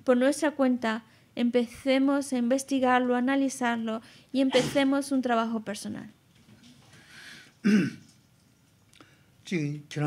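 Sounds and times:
throat-clearing cough: 4.5s - 4.9s, 7.6s - 8.1s.

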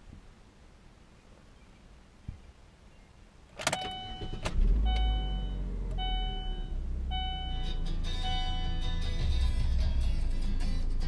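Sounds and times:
car engine starting and idling: 3.5s - 11.0s
dashboard warning chime: 3.6s - 9.2s.

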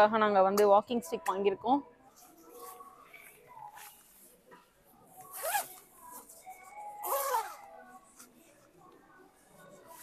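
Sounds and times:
jacket zipper being pulled: 5.3s - 5.8s, 7.0s - 7.6s.

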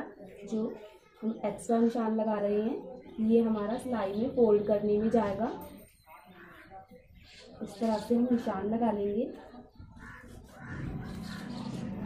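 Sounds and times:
crow cawing: 9.9s - 12.0s.

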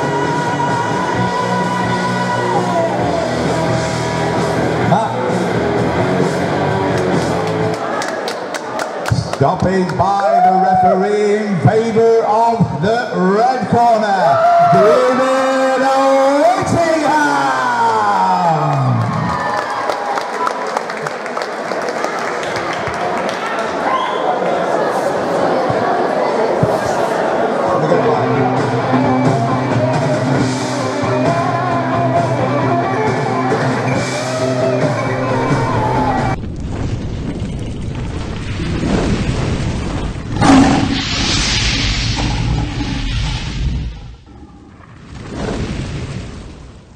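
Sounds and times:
rock music: 0.0s - 7.7s
crowd chatter: 4.6s - 9.8s, 20.5s - 36.4s
crowd applauding and cheering: 6.3s - 11.0s, 16.4s - 24.4s, 34.1s - 36.4s
deep rumbling sound effect: 35.4s - 46.5s.

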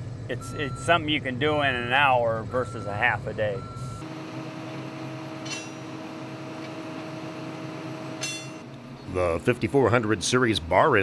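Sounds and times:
paving machine humming and whining: 2.2s - 9.2s
metallic clinks of steel bars: 5.5s - 5.8s, 8.2s - 8.7s.

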